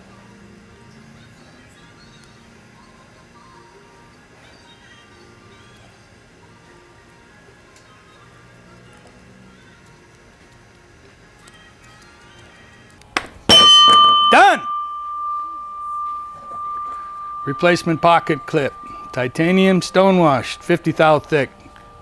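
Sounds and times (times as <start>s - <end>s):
quiet background music: 0.0s - 22.0s
doorbell ding-dong chime: 13.5s - 21.2s.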